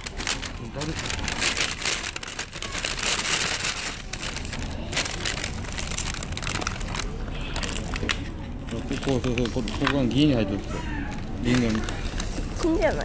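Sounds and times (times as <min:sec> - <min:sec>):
paper packaging crinkling: 0:00.0 - 0:13.0.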